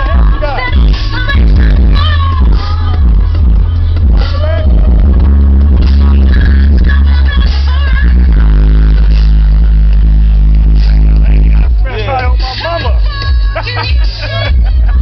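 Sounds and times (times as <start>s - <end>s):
person singing: 0.0s - 9.7s
loud music with deep sub-bass: 0.0s - 15.0s.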